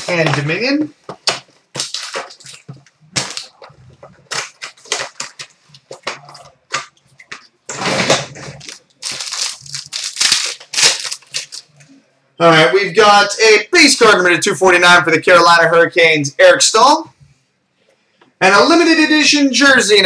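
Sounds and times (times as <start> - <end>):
cards rustling: 1.2 - 7.5, 8.4 - 11.9
foil wrappers crinkling and tearing: 1.7 - 6.2, 8.5 - 11.8.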